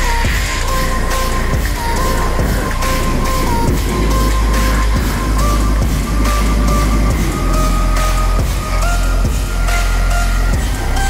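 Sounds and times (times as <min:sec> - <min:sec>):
bass-heavy beat music: 0:00.0 - 0:11.0.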